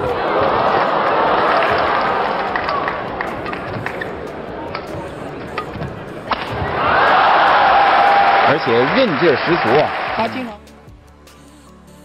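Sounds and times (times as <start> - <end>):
crowd murmur: 0.0 - 10.6
shoe squeaks: 3.3 - 6.7.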